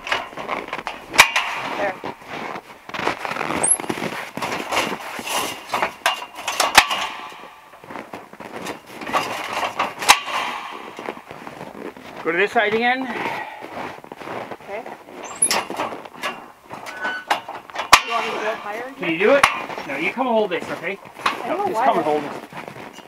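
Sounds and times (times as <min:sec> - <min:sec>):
metal clanks: 0:00.0 - 0:11.7, 0:15.1 - 0:22.1
scaffold rattling and handling: 0:00.0 - 0:13.6, 0:15.0 - 0:23.0.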